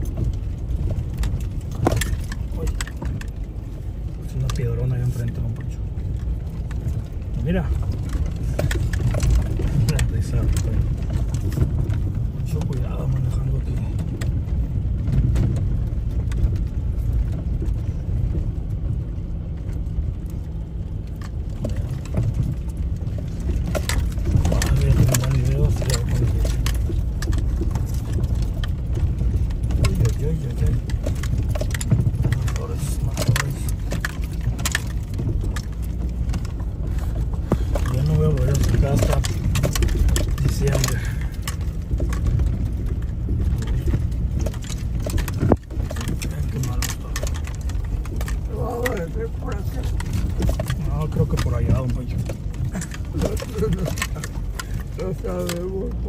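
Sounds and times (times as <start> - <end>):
engine and tyres rumbling: 0.0 - 56.0
knocks and rattles from stones: 0.0 - 56.0.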